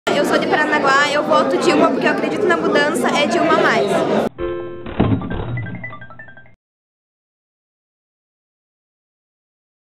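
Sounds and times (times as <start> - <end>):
thud: 4.8 - 5.8.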